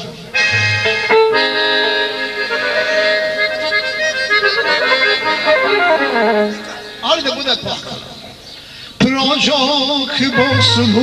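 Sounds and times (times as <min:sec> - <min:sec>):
accordion playing folk song: 0:00.0 - 0:07.4, 0:10.2 - 0:11.0.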